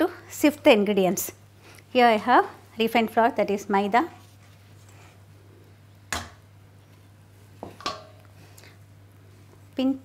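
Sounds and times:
bowls and utensils knocking: 0:07.6 - 0:08.2.

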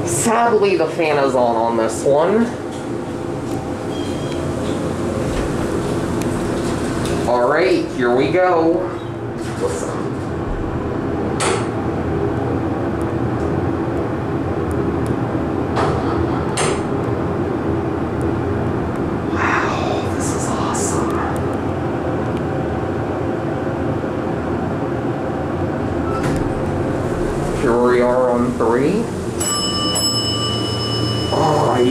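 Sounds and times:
elevator hum with pitched tones: 0:00.0 - 0:31.9
ventilation fan: 0:00.0 - 0:31.9.

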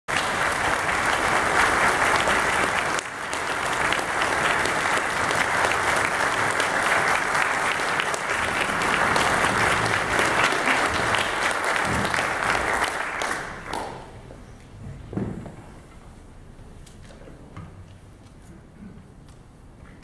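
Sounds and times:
dense applause: 0:00.1 - 0:14.1.

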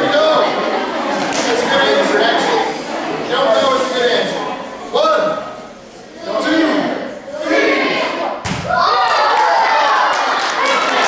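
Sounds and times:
children calling out: 0:06.0 - 0:11.0
basketball thud on gym floor: 0:08.4 - 0:08.8.

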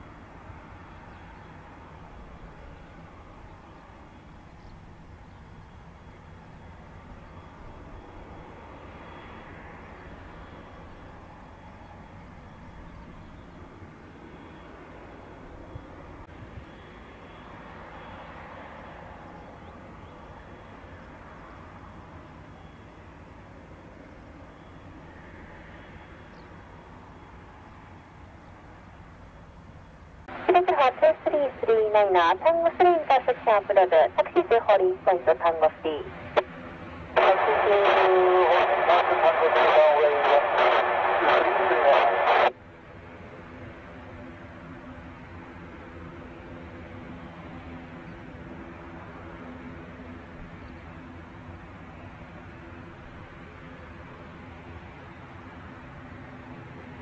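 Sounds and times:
distant light aircraft engine: 0:00.0 - 0:57.0
faint radio hiss: 0:30.4 - 0:36.5, 0:37.1 - 0:42.6
voice over radio: 0:30.4 - 0:36.5, 0:37.1 - 0:42.6.

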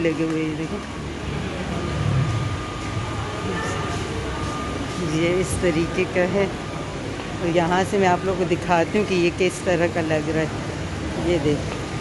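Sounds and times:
faint steady high tone: 0:01.0 - 0:07.6
low rumble: 0:01.3 - 0:03.9.

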